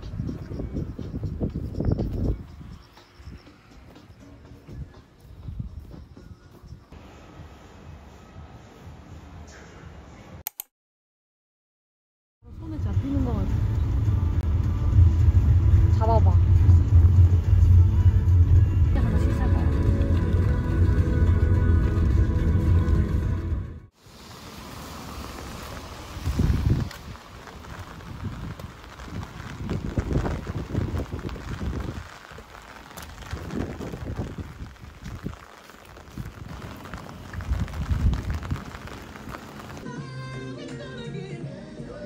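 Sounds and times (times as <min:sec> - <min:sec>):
wind gusts buffeting microphone: 0:00.0 - 0:03.5, 0:25.3 - 0:39.8
music: 0:00.0 - 0:09.1, 0:12.4 - 0:23.9, 0:39.8 - 0:42.0
rain: 0:12.6 - 0:39.9
loud low rumble: 0:12.8 - 0:23.9.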